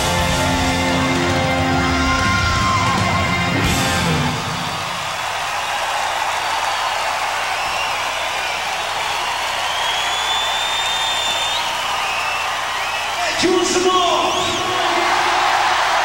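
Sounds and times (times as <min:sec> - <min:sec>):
band music: 0:00.0 - 0:05.0
stadium crowd cheering: 0:00.0 - 0:16.0
shrill whistles: 0:07.4 - 0:13.4, 0:14.0 - 0:14.9.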